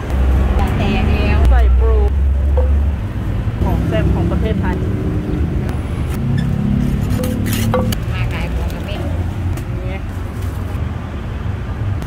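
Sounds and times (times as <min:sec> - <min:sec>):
vehicle engine rumbling: 0:00.0 - 0:11.1
wooden pestle knocking in mortar: 0:02.5 - 0:02.9, 0:07.2 - 0:08.1.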